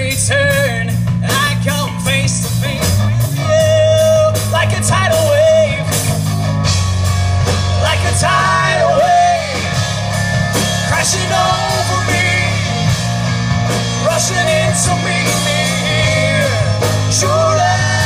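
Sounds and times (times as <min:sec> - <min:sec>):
live rock band playing: 0:00.0 - 0:18.0
lead guitar melody: 0:02.4 - 0:18.0.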